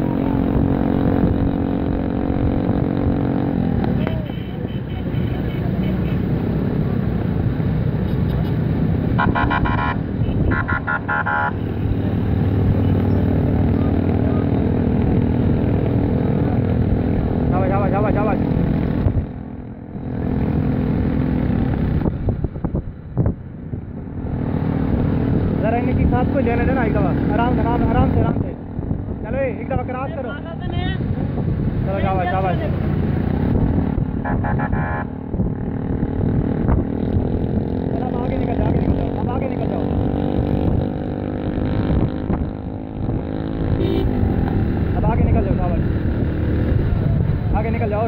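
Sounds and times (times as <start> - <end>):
wind noise on microphone: 21.4 - 26.6, 27.8 - 29.3, 30.7 - 48.0
motorcycle engine running: 31.8 - 47.7.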